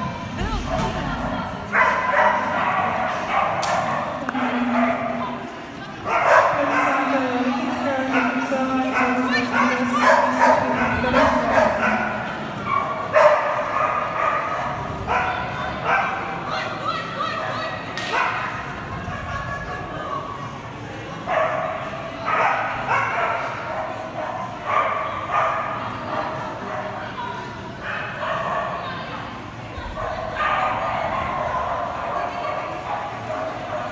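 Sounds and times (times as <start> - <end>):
murmur of people talking: 0.0 - 33.9
dog barking: 1.7 - 5.3, 6.0 - 7.1, 8.0 - 16.2, 21.3 - 27.0, 30.0 - 33.9.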